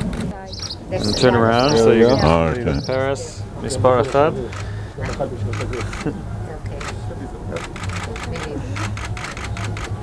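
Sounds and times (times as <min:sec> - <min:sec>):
voices murmuring: 0:00.0 - 0:10.0
camera shutters clicking: 0:04.1 - 0:06.1, 0:06.7 - 0:10.0.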